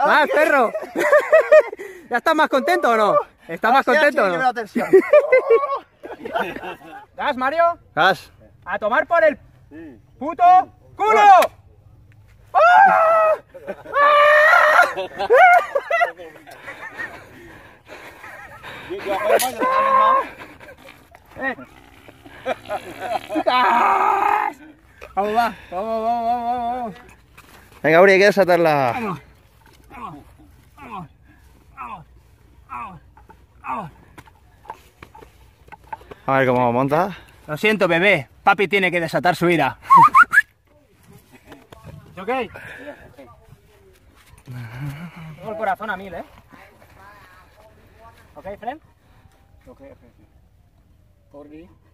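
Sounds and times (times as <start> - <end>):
man shouting excitedly: 0.0 - 0.7, 2.1 - 4.6, 8.7 - 11.6, 12.5 - 15.6, 19.1 - 20.4
man whooping: 12.5 - 15.6, 19.2 - 20.4, 23.5 - 24.6, 39.8 - 40.4.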